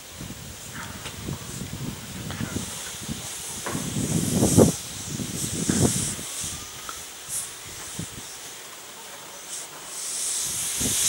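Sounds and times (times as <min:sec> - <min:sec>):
steam locomotive hissing steam: 0:00.0 - 0:11.0.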